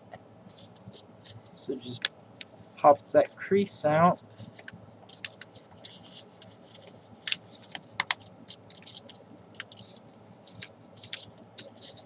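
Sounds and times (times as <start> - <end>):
paper crackling and snapping: 4.4 - 12.0.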